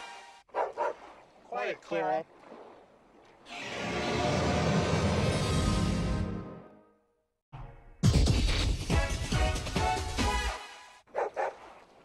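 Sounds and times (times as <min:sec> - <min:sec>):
dog barking: 0:00.5 - 0:01.0, 0:11.1 - 0:11.7
music: 0:03.6 - 0:11.0.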